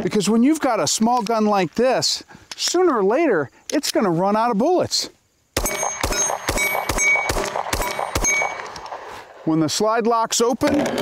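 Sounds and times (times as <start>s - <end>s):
ringing ping from steel target: 5.6s - 8.6s
pistol shots: 5.6s - 9.0s.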